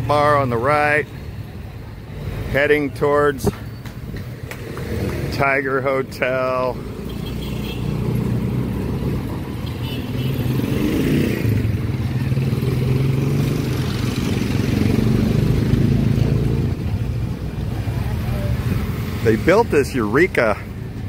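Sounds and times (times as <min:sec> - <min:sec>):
street traffic engines: 0:00.0 - 0:21.0.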